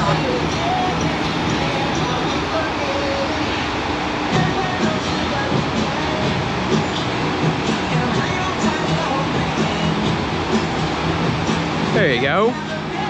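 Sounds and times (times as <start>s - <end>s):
voices: 0.0s - 11.0s, 11.6s - 13.0s
faint music: 0.0s - 13.0s
rushing roar of water: 0.0s - 13.0s.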